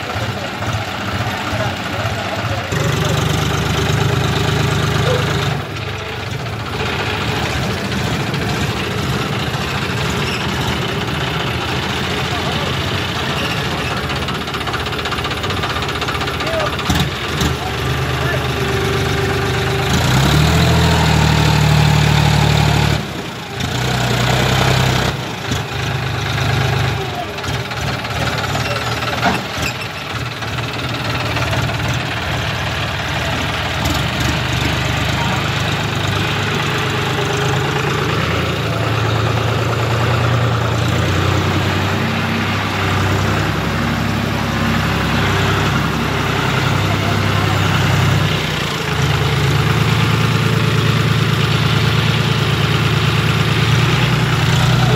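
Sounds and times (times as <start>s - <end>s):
tractor diesel engine: 0.0s - 54.9s.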